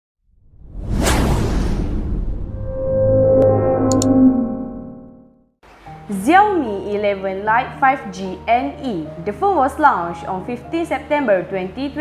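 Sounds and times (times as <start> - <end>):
whoosh: 0.4 - 5.3
low rumble: 0.4 - 5.4.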